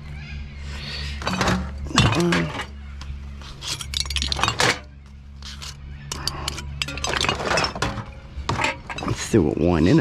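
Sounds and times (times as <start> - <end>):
glass bottles clinking: 1.2 - 2.8, 3.6 - 5.0, 6.1 - 9.4.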